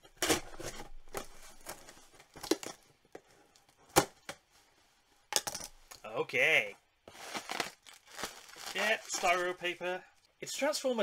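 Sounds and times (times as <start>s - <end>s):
cardboard tearing: 7.1s - 9.6s.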